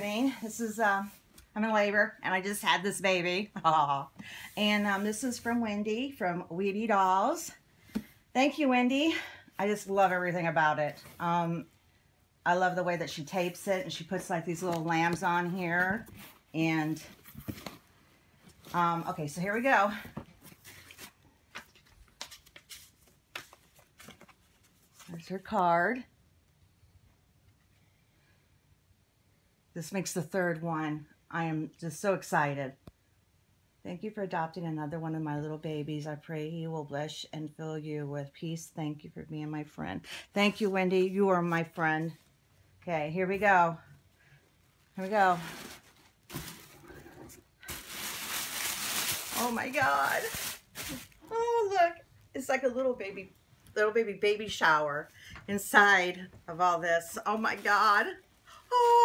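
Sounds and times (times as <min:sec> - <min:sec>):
tissue paper rustling: 0:44.7 - 0:51.3, 0:57.1 - 0:59.0
plastic wrapping crinkling: 0:44.9 - 0:51.3.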